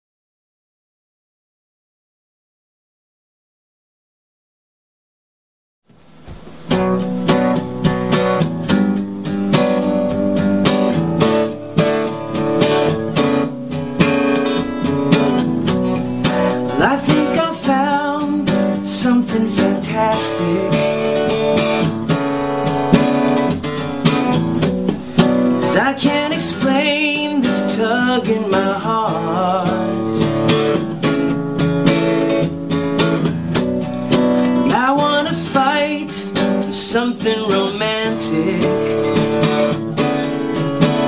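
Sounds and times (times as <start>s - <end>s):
acoustic guitar strumming: 5.9s - 41.0s
man singing: 16.5s - 22.0s, 25.4s - 30.7s, 34.4s - 39.6s.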